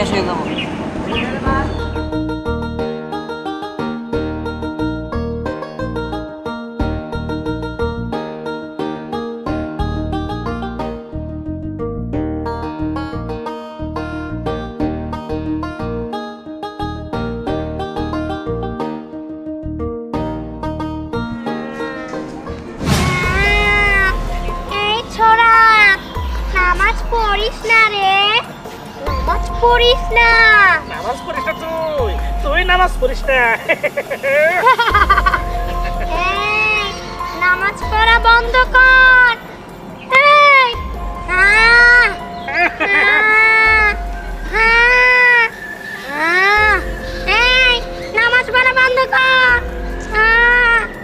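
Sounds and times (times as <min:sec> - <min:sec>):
low musical drone: 0:16.8 - 0:34.1, 0:34.8 - 0:51.0
whoosh sound effect: 0:22.3 - 0:24.8.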